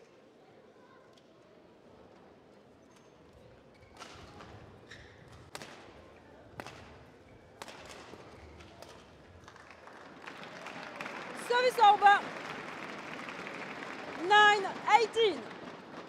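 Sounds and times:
racket striking shuttlecock: 6.6s - 7.0s.

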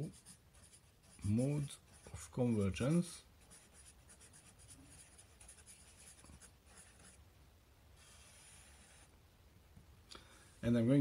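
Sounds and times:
marker pen writing on whiteboard: 0.0s - 7.2s, 8.0s - 9.1s.

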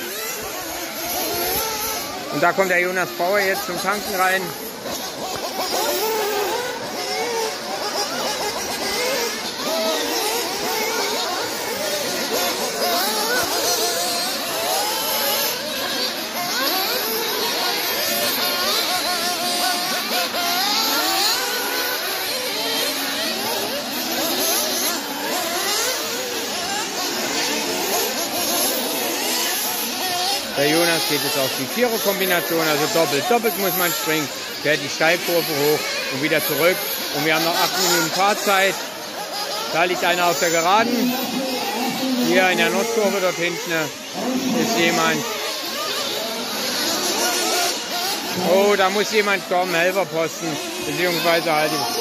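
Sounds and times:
rc car engines revving: 0.0s - 52.0s.

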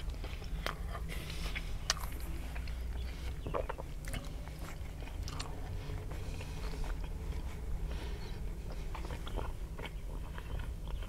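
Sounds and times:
low hum: 0.0s - 11.0s
man chewing sandwich: 0.0s - 11.0s.

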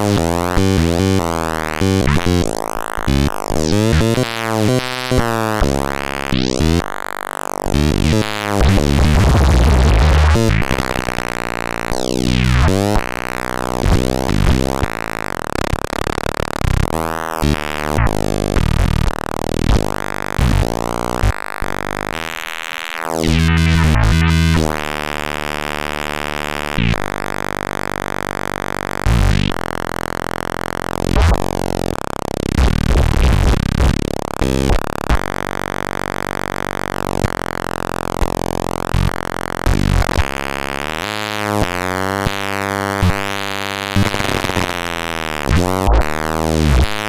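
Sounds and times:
buzzing synthesizer drone: 0.0s - 47.0s.

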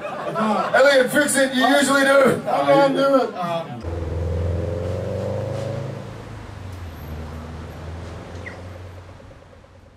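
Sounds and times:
car engine in traffic: 3.8s - 9.9s.

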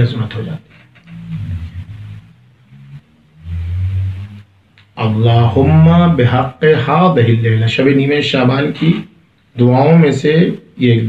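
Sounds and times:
man humming: 1.1s - 4.6s.

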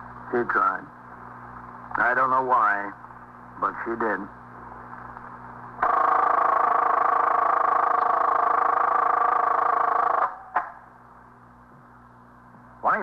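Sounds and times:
telephone bell ringing: 5.8s - 10.2s.

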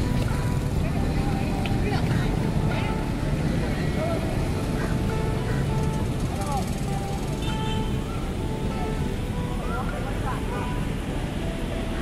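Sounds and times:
low rumble of passing traffic: 0.0s - 12.0s
people talking nearby: 0.5s - 12.0s.

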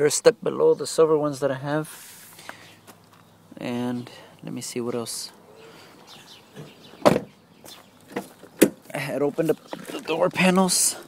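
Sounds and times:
car door thump: 6.6s - 7.3s.

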